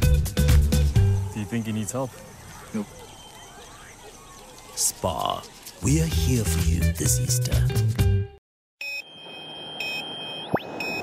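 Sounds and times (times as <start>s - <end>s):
short beeps: 8.8s - 11.0s.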